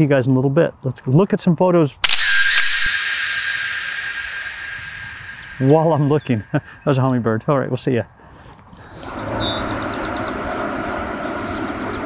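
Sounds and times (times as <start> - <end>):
camera shutter click: 2.0 - 5.4
steady high whine: 2.0 - 6.8.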